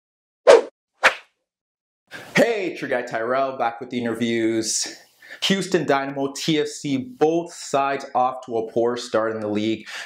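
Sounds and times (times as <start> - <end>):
swish sound effects: 0.5 - 1.2.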